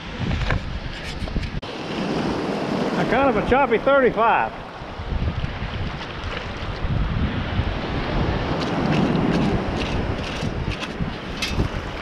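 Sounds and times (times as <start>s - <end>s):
wind buffeting microphone: 0.0s - 12.0s
shallow surf washing: 1.6s - 12.0s.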